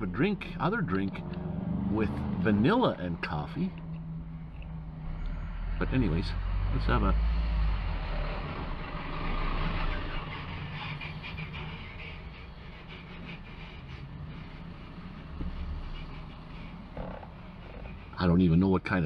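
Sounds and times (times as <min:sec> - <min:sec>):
rushing noise: 0:04.2 - 0:18.2.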